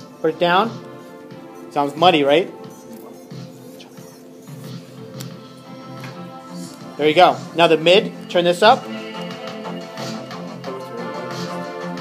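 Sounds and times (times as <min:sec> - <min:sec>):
muddy song playback: 0:00.0 - 0:12.0.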